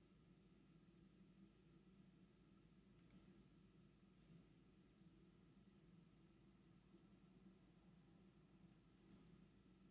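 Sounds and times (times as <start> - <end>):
faint sharp clicks: 3.0 - 3.3, 8.9 - 9.2.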